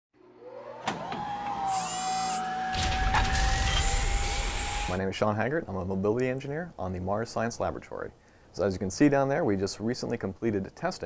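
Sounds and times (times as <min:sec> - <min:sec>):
electronic whine gliding up: 0:01.6 - 0:05.0.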